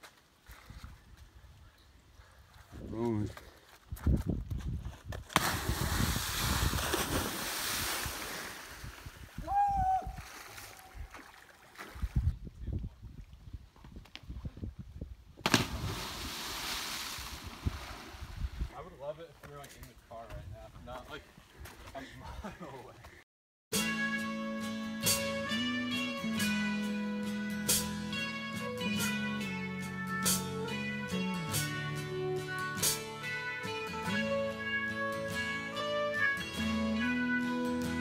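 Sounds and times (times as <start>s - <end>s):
splash of water entry: 5.3s - 9.0s, 15.4s - 18.6s
whooping cheer: 9.4s - 10.2s.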